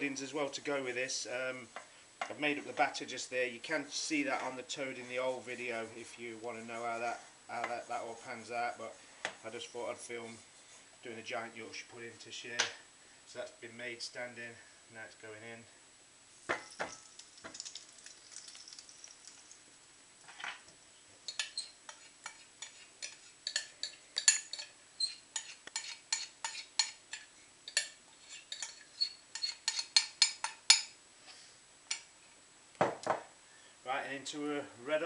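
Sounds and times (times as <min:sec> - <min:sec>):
batter sizzling in a hot pan: 0:16.3 - 0:19.8, 0:21.3 - 0:31.0
sharp crackles and pops: 0:16.4 - 0:20.7.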